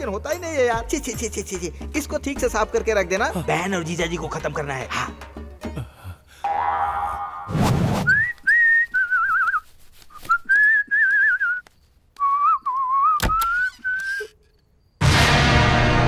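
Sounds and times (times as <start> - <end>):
short rushing noise: 7.5 - 8.3
man whistling a tune: 8.1 - 14.4
sharp click: 13.2 - 14.3.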